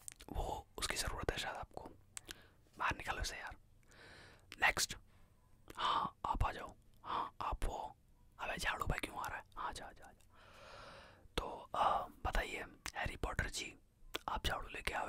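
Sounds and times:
man whispering: 0:00.0 - 0:03.6, 0:04.4 - 0:10.3, 0:11.3 - 0:15.0.

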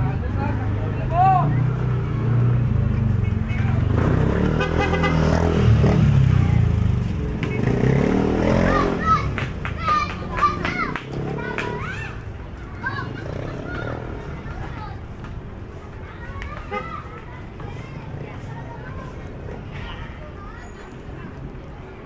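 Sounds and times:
motorcycle engine passing: 0:00.7 - 0:15.0
people and children calling: 0:07.5 - 0:22.0.

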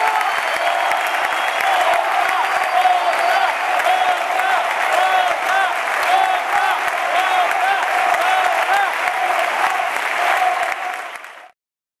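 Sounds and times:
audience applauding: 0:00.0 - 0:11.6.

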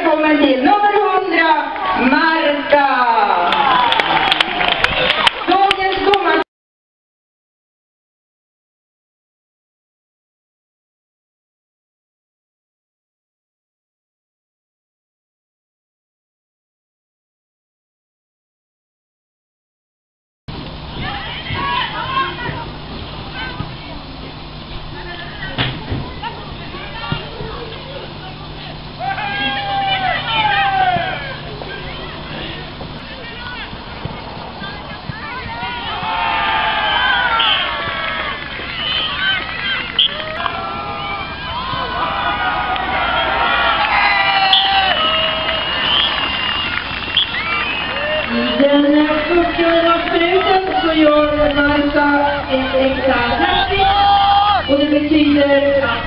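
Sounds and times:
outdoor background noise: 0:00.0 - 0:06.4, 0:20.5 - 0:56.0
distant high-pitched voices shouting: 0:21.0 - 0:56.0.

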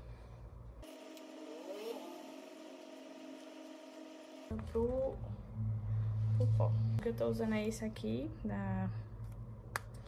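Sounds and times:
faint mechanical hum: 0:00.0 - 0:10.0.

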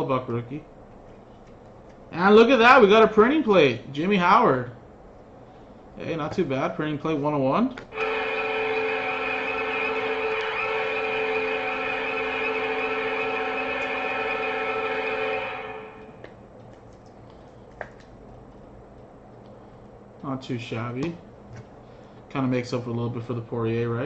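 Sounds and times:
hockey goal horn chord: 0:07.9 - 0:16.3.

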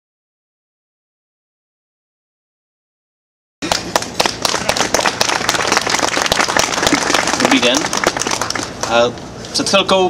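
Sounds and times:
crowd applauding: 0:03.6 - 0:09.0.

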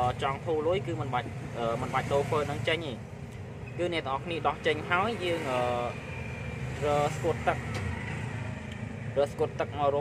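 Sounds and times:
man talking: 0:00.0 - 0:03.0, 0:03.8 - 0:06.0, 0:06.8 - 0:07.8, 0:09.2 - 0:10.0.

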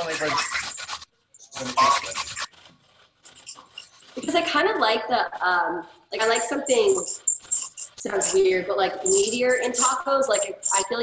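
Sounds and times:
grater rasping: 0:00.0 - 0:11.0.

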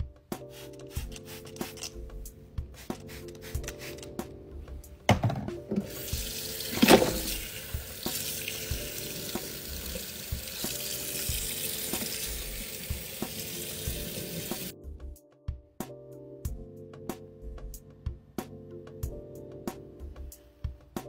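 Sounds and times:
tap water running into colander: 0:05.7 - 0:14.7.

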